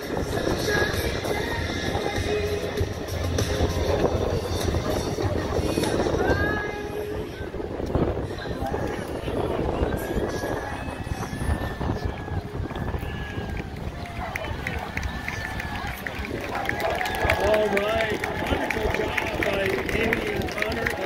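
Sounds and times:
voices of spectators: 0.0 - 21.0
wind rumbling on microphone: 0.0 - 21.0.

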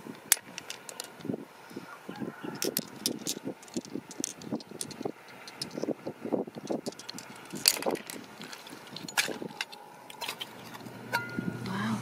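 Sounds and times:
shallow water lapping and sloshing: 7.7 - 10.9.

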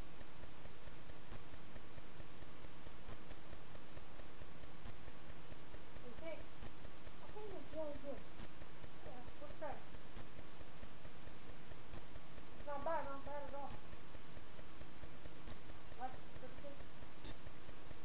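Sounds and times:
soft clicks: 0.0 - 18.0
steady low hum: 0.0 - 18.0.

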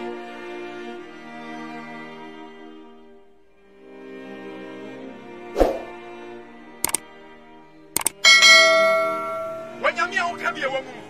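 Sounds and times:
click: 6.8 - 7.0, 8.0 - 8.2
bright bell ding: 8.2 - 9.9.

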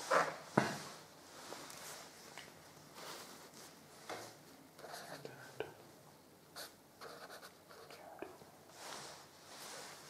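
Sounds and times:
pen scratching on paper: 6.6 - 8.0.

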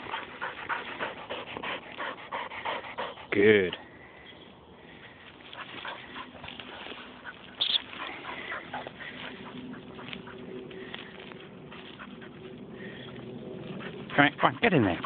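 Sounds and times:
dry bracken rustling and crackling: 5.0 - 15.0.

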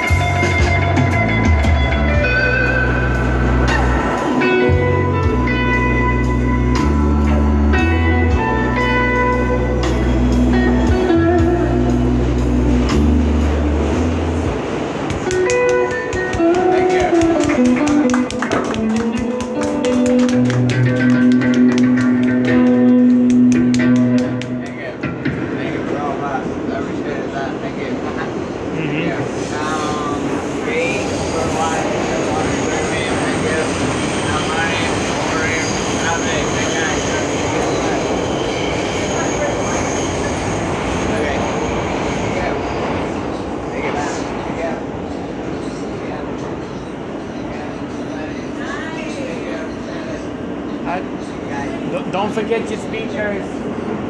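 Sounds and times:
flamenco guitar strumming: 0.0 - 14.5, 15.1 - 25.6
subway train rumble and rattle: 0.0 - 54.0
voices: 23.8 - 38.2, 38.9 - 53.8.

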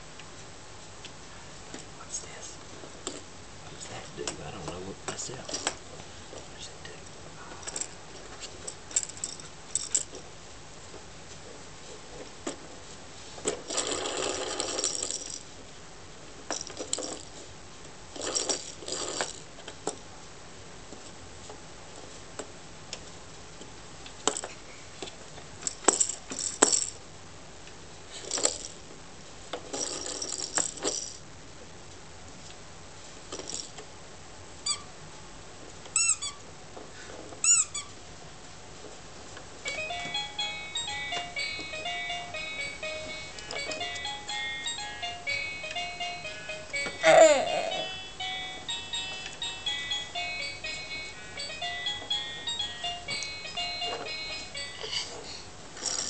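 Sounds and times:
toy playing beeping tune: 39.7 - 55.4.

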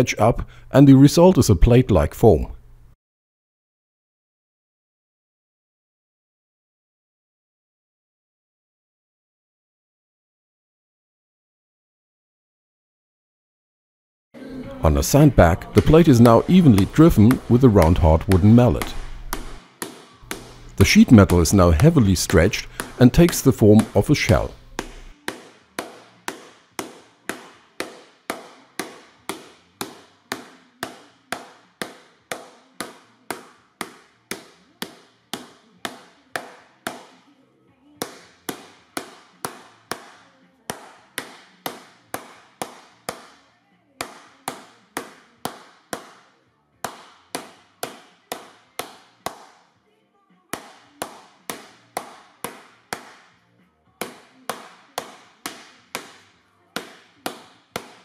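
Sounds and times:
mallet beating metal sheet: 15.6 - 31.5.

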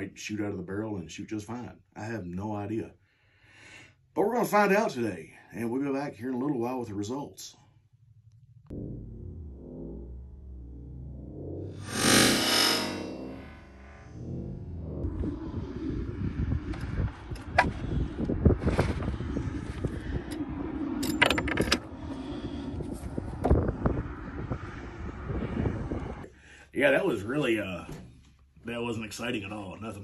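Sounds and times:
loud rush of noise: 11.6 - 26.3
wind rumbling on microphone: 13.3 - 26.4.

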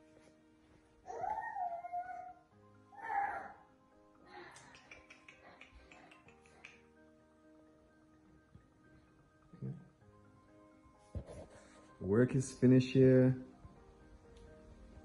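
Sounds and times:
soft background music: 0.0 - 15.0
wavering cry: 1.1 - 3.7.

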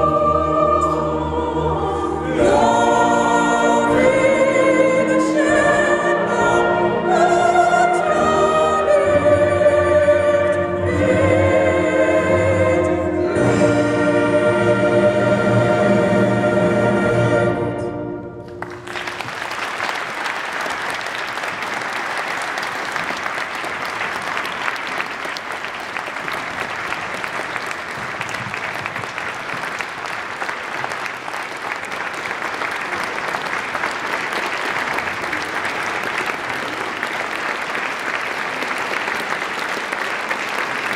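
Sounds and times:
choir and brass band chord: 0.0 - 19.2
audience applauding: 18.5 - 40.9.

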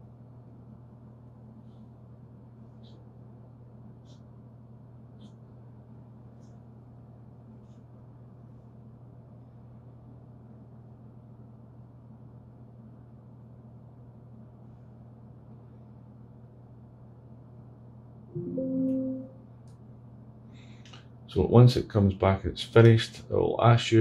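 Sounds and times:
steady low hum: 0.0 - 24.0
computer alert chime: 18.4 - 19.4.

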